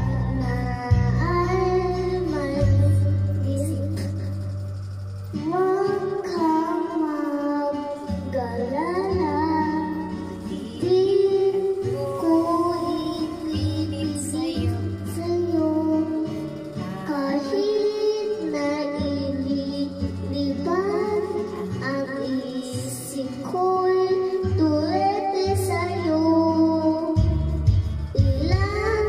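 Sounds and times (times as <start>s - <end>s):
boy singing into a microphone: 0.0s - 4.5s, 5.3s - 29.0s
backing music track: 0.0s - 29.0s.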